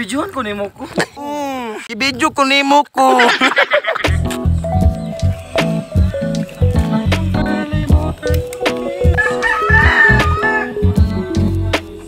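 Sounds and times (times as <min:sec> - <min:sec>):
background music with steady beat: 0:04.0 - 0:12.0
rooster crowing: 0:09.2 - 0:10.8.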